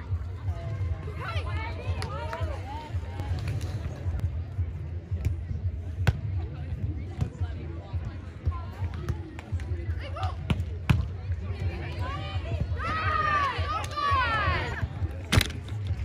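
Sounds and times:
people shouting: 0:12.8 - 0:14.8.

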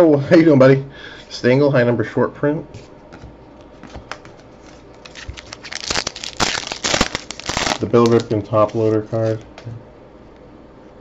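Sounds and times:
card pack wrapper crinkling and tearing: 0:04.1 - 0:09.5.

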